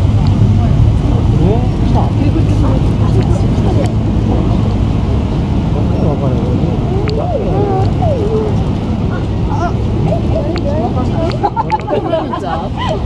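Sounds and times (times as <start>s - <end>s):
cars passing slowly: 0.0s - 13.0s
chatter of voices: 0.4s - 4.8s, 5.4s - 13.0s.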